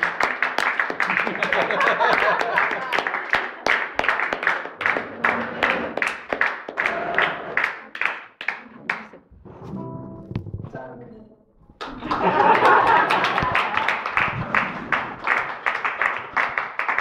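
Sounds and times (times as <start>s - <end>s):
small audience clapping: 0.0s - 9.3s, 11.8s - 17.0s.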